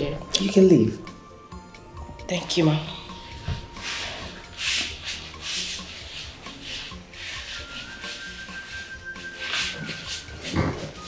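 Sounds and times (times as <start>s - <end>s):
soft background music: 0.0s - 11.0s
fabric rustling: 3.0s - 11.0s.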